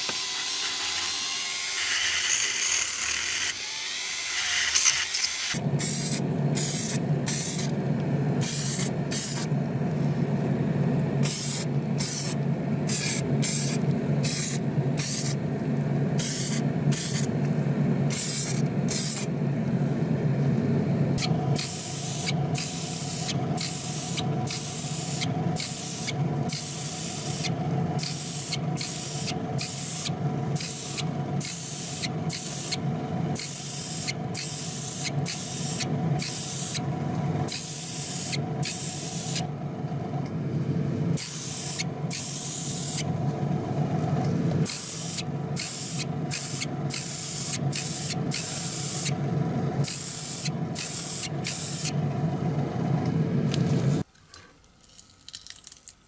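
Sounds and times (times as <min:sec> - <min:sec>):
steady machine hum: 0:05.5 - 0:54.1
spray gun hissing bursts: 0:21.4 - 0:32.8, 0:33.4 - 0:36.8, 0:37.5 - 0:39.4, 0:44.7 - 0:49.1, 0:49.8 - 0:51.9.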